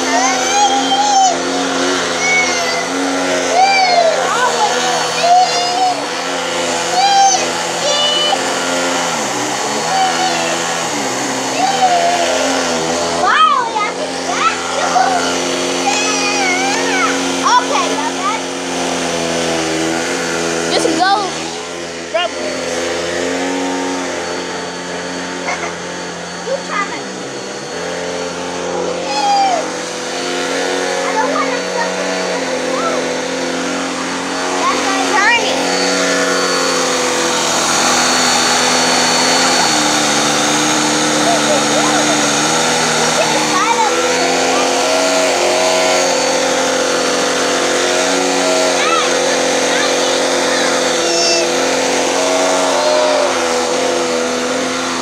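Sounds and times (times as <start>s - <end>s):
baby squealing and cooing: 0.0s - 8.5s, 9.6s - 17.7s, 29.0s - 29.8s
vacuum cleaner motor running: 0.0s - 55.0s.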